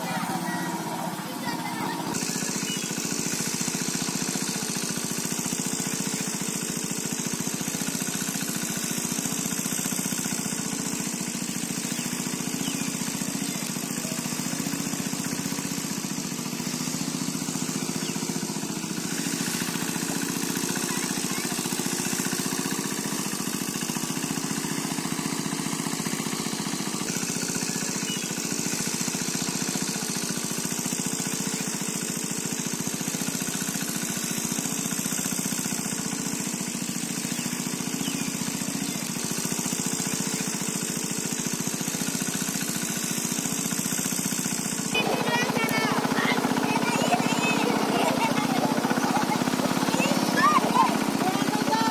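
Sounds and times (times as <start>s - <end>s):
engine running steadily: 0.0s - 51.9s.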